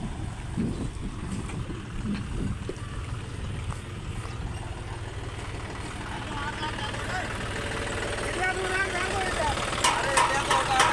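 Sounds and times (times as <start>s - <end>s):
tractor diesel engine idling: 0.0s - 10.9s
people's voices: 5.8s - 10.9s.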